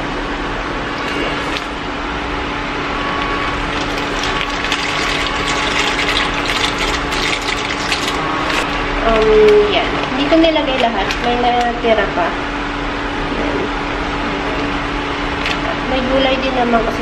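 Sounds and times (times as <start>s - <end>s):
water boiling and bubbling: 0.9s - 11.9s, 13.9s - 16.0s
pasta clicking and splashing: 1.0s - 1.8s, 3.2s - 11.8s, 15.3s - 15.7s
plastic bag crinkling: 3.5s - 11.7s.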